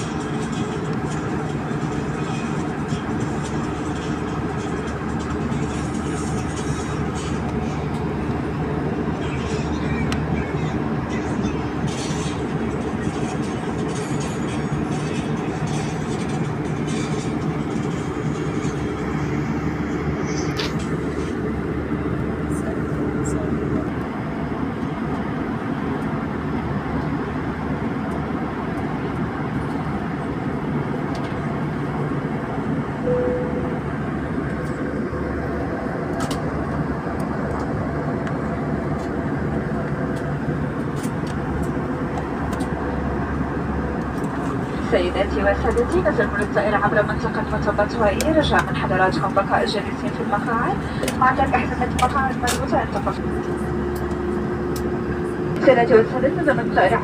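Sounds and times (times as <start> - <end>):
airliner engine drone in cabin: 0.0 - 57.0
low steady tone: 33.0 - 34.3.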